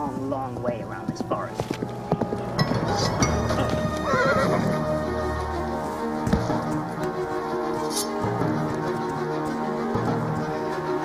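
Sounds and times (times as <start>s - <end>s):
background music with held notes: 0.0s - 11.0s
horse neighing: 2.7s - 5.0s.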